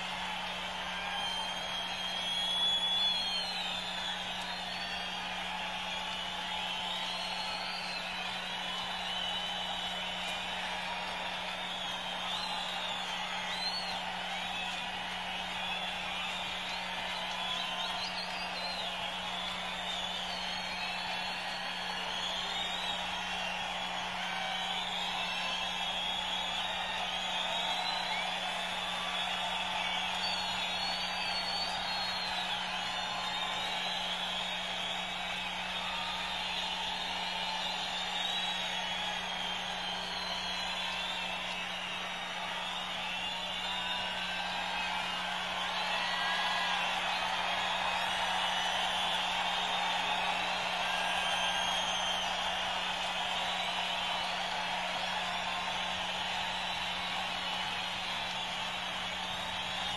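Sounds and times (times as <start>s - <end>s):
crowd cheering: 0.0s - 59.9s
whistles and whoops: 0.0s - 59.9s.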